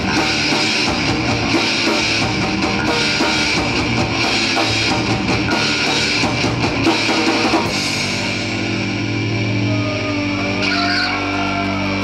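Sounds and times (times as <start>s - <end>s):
distorted guitars and bass chord: 0.0s - 12.0s
guitar note squealing and bending: 7.7s - 12.0s.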